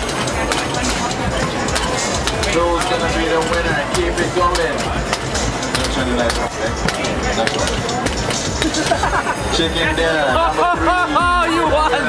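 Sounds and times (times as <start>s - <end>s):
mallets knocking on arcade game: 0.0s - 9.2s
crowd chatter: 0.0s - 12.0s.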